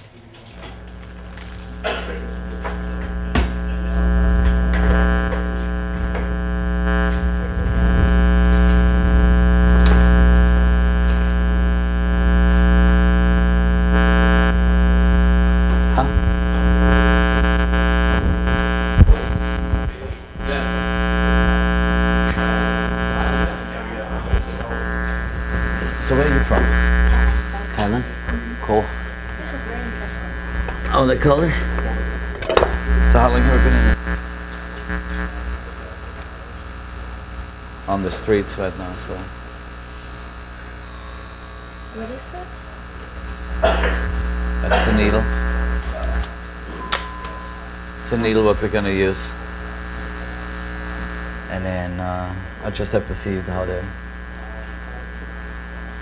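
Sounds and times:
tattoo machine buzzing: 0.8s - 56.0s.

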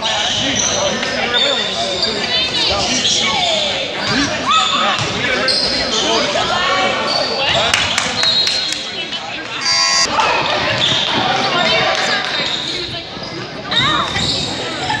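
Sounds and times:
voices echoing in gym: 0.0s - 15.0s
sneakers squeaking on floor: 0.2s - 6.2s, 7.0s - 10.1s, 12.4s - 14.9s.

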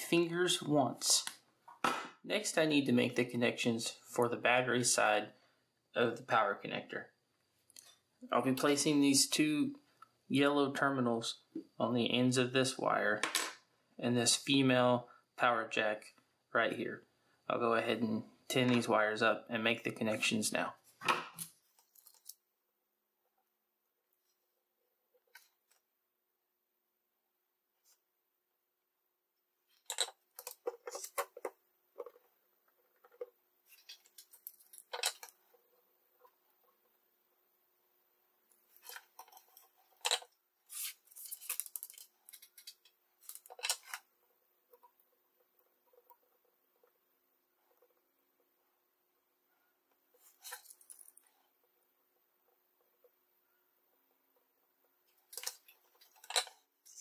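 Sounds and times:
man talking: 0.0s - 1.4s, 2.2s - 5.3s, 6.0s - 7.1s, 8.2s - 13.2s, 14.0s - 20.8s.

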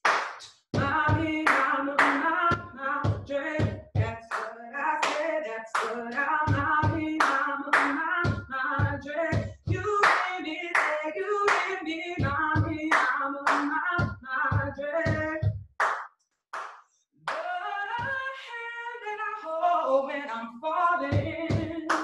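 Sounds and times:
hand claps: 0.0s - 0.7s, 1.4s - 2.2s, 4.3s - 8.0s, 10.0s - 11.7s, 12.9s - 13.7s, 15.8s - 17.5s
woman singing: 0.8s - 15.5s, 17.3s - 22.0s.

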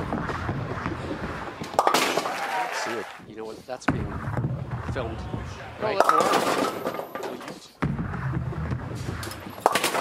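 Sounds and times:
bowling ball hitting pins: 0.0s - 2.9s, 3.9s - 10.0s.

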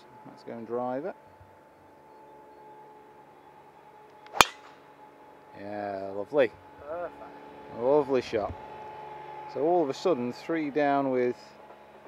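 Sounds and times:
faint steady hum: 0.0s - 12.0s
golf ball crack: 4.2s - 4.9s
golf club swish: 4.4s - 4.7s.

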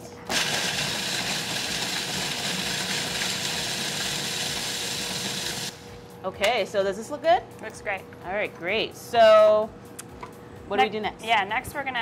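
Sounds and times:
food processor grinding: 0.3s - 5.8s.

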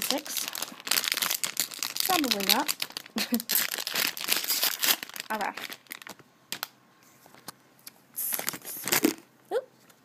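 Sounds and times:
foil packet crinkling and tearing: 0.0s - 6.7s, 8.2s - 9.2s.

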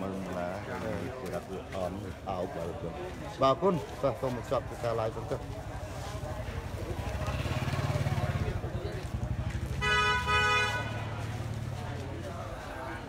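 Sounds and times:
engine rumbling: 5.4s - 13.0s
vehicle horn toots: 9.8s - 11.1s.

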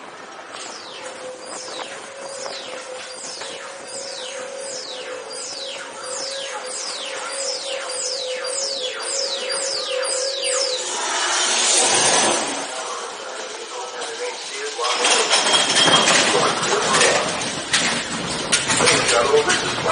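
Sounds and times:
steady electronic hum: 1.0s - 14.9s
falling synthesized zaps: 8.5s - 14.9s.

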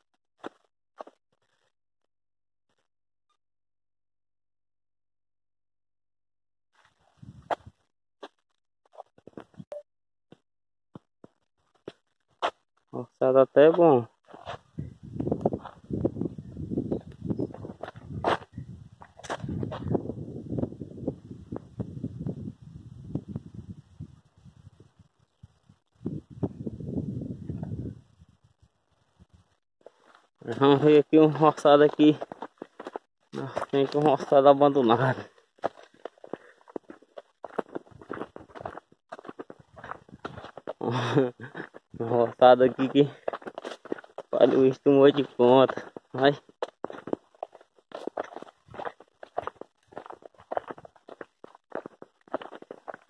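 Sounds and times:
footsteps through plants: 29.9s - 53.0s.

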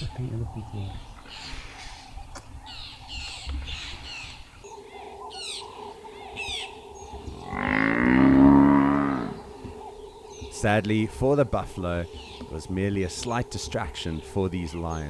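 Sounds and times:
birds chirping: 0.0s - 15.0s
buffalo distress bellow: 7.4s - 9.5s.

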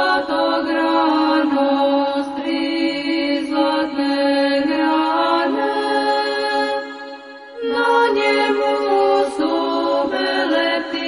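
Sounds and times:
chant in long held notes: 0.0s - 11.0s.

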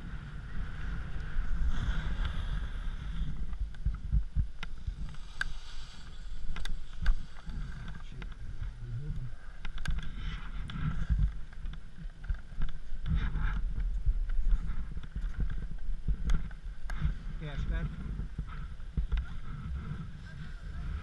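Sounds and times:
wind rumble on microphone: 0.0s - 21.0s
skis scraping on crusty snow: 0.3s - 8.9s.

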